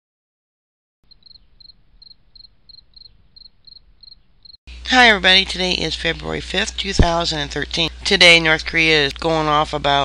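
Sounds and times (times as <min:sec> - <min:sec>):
crickets chirping: 0:01.1 - 0:04.6.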